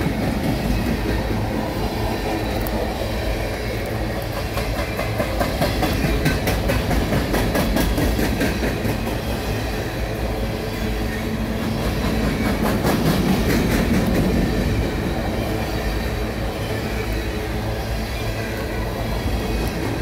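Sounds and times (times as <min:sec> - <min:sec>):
train wheels rumbling on rail: 0:00.0 - 0:20.0
wheels clicking over rail joints: 0:00.0 - 0:20.0.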